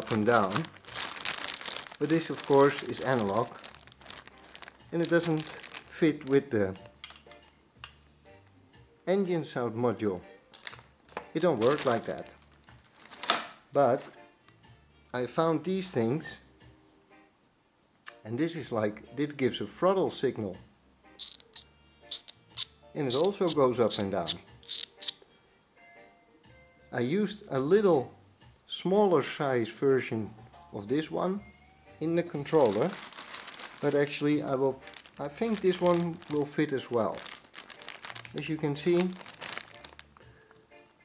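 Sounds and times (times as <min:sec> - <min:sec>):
plastic bag crinkling: 0:00.0 - 0:07.3, 0:10.5 - 0:13.5, 0:21.2 - 0:22.3, 0:23.1 - 0:25.2, 0:32.4 - 0:40.3.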